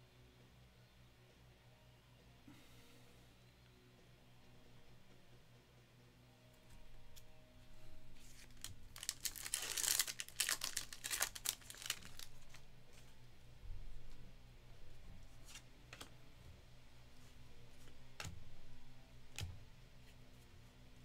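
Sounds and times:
foil wrapper tearing and crinkling: 0:08.2 - 0:12.6
cards handled ticking: 0:08.2 - 0:13.1, 0:15.4 - 0:16.2, 0:19.3 - 0:19.6.

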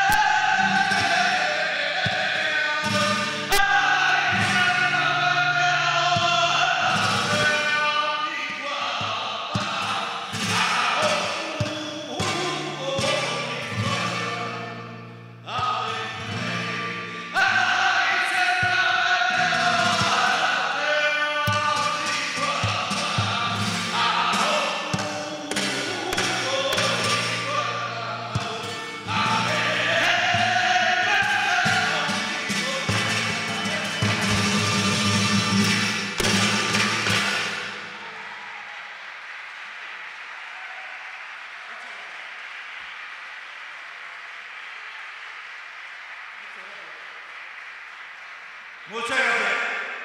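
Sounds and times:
strummed flamenco guitar: 0:00.0 - 0:38.6
flamenco singing: 0:00.0 - 0:39.3.

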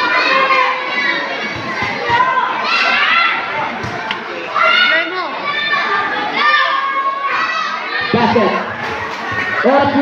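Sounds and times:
children shouting and chattering: 0:00.0 - 0:10.0.

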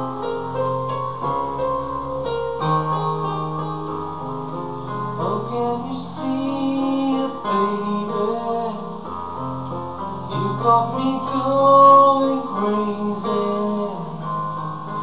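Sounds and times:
electronic keyboard slow ballad: 0:00.0 - 0:15.0.

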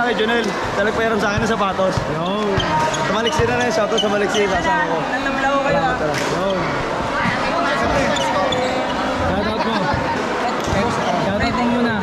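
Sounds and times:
people talking over one another: 0:00.0 - 0:12.0
basketball bouncing on court: 0:01.2 - 0:03.6.

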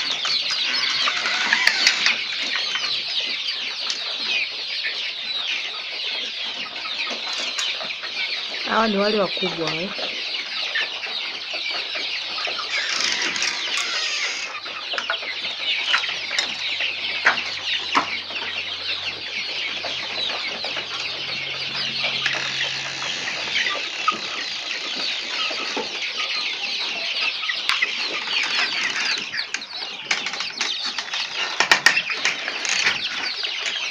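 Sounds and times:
chicks peeping: 0:00.0 - 0:33.9
hens clucking: 0:00.0 - 0:33.9.

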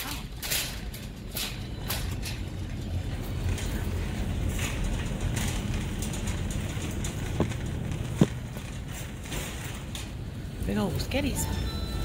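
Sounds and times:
cart basket rattling: 0:00.0 - 0:10.2
shopping cart wheels rumbling: 0:00.0 - 0:12.0.

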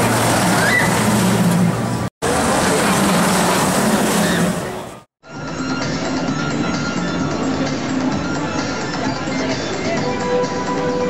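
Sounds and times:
roller coaster wheels rumbling: 0:00.0 - 0:05.1.

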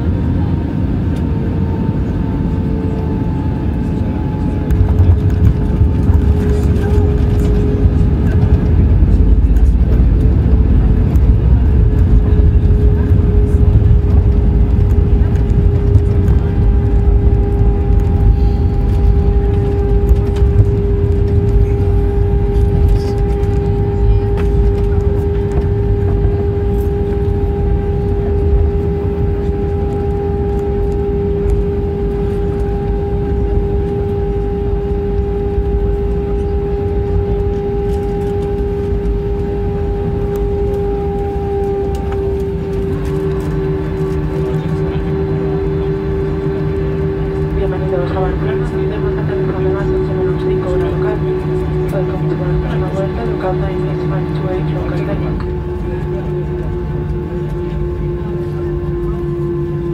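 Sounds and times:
jet engine hum: 0:00.0 - 0:59.9
loud low rumble of aircraft: 0:00.0 - 0:59.9.

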